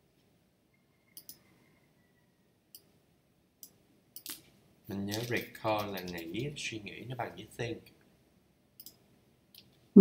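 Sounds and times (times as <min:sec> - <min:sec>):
computer mouse clicks: 0:01.2 - 0:01.4, 0:08.8 - 0:09.0.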